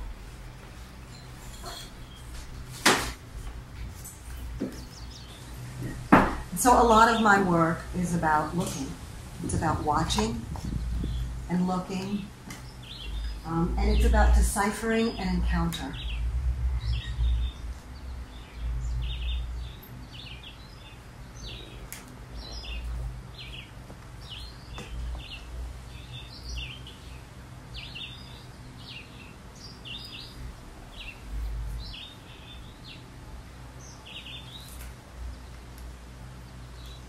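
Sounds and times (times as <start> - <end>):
low rumbling background noise: 0.0 - 37.0
small birds chirping: 4.4 - 7.6, 9.5 - 37.0.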